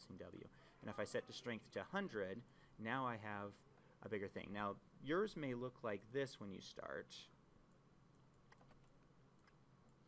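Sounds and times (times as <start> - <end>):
faint computer clicks: 7.7 - 10.0.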